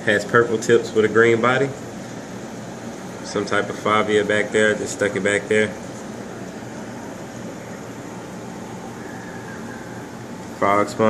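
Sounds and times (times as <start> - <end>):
aquarium water pumps: 0.0 - 11.0.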